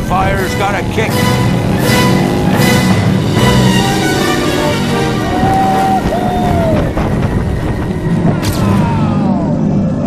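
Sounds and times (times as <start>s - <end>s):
roller coaster rumbling on track: 0.0s - 10.0s
wind on microphone: 5.3s - 8.5s.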